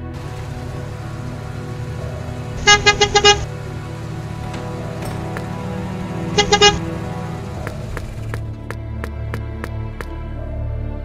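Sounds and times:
van engine running: 0:00.0 - 0:10.2
short horn toots: 0:01.0 - 0:07.9.

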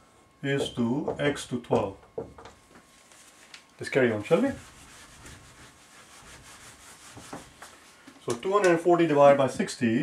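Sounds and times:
eraser rubbing on whiteboard: 0:04.3 - 0:07.7.

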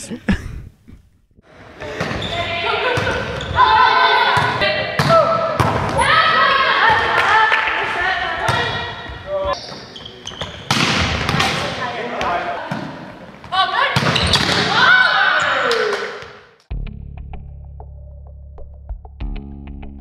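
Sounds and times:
volleyballs struck and bouncing: 0:01.8 - 0:14.9.

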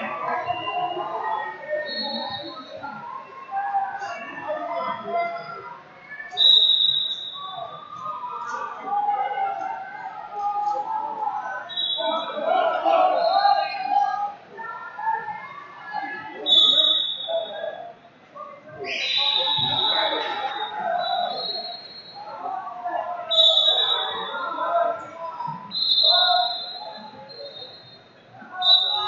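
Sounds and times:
crowd chatter in a hall: 0:00.0 - 0:29.0
referee's whistle blasts: 0:06.3 - 0:07.8, 0:16.5 - 0:17.5, 0:18.9 - 0:22.2, 0:23.3 - 0:24.6, 0:25.6 - 0:29.0.

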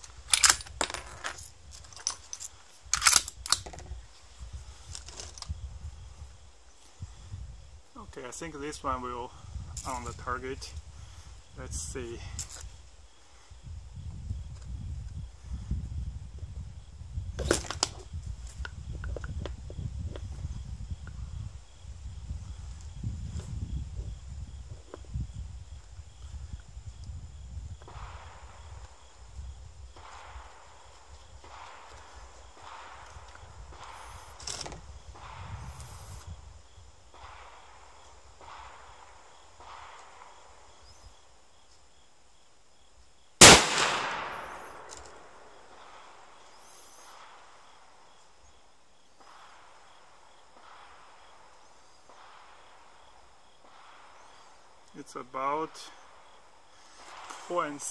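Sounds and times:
wind rumble on microphone: 0:00.0 - 0:41.2
rifle shot with echo: 0:43.4 - 0:46.2.

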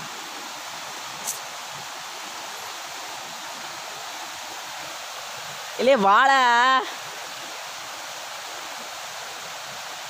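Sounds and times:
stream water rushing over rocks: 0:00.0 - 0:10.0.

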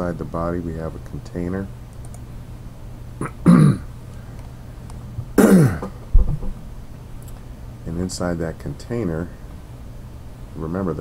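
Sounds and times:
man clearing his throat: 0:03.2 - 0:03.9, 0:05.4 - 0:06.0
brief low thump: 0:06.1 - 0:06.6.

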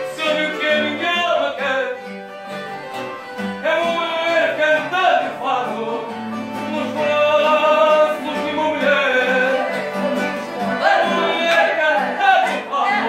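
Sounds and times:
plucked guitar: 0:00.0 - 0:13.0.

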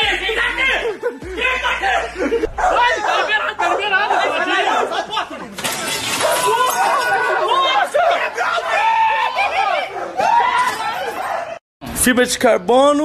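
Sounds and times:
laughter: 0:00.0 - 0:05.1
excited voices: 0:00.0 - 0:11.6.

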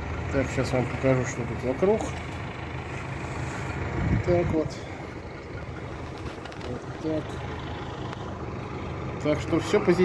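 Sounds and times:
distant vehicle engines humming: 0:00.0 - 0:10.0.

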